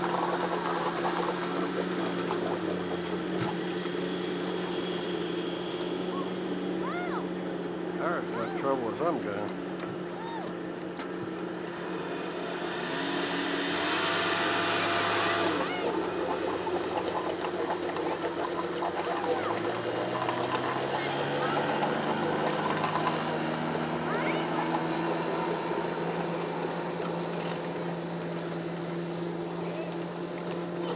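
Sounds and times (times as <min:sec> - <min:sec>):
outboard motor running: 0:00.0 - 0:30.9
second engine: 0:00.0 - 0:30.9.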